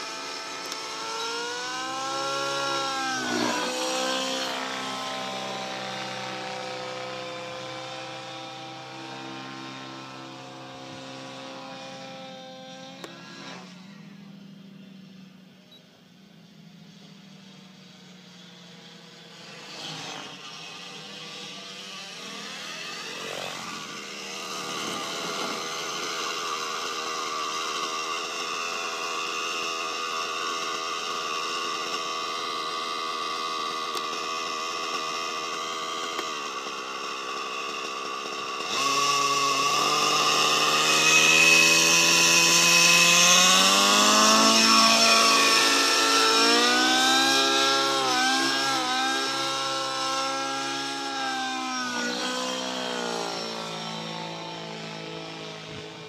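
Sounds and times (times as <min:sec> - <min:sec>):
model helicopter engine and rotor: 0:00.0 - 0:56.0.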